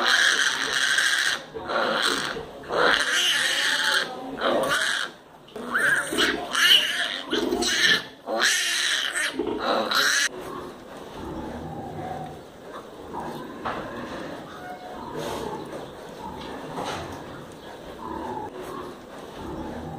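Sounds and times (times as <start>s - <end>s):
piglets squealing: 0.0s - 10.3s.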